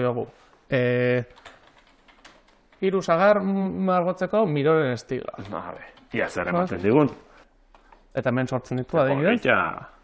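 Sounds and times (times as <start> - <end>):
person speaking: 2.7 - 10.0.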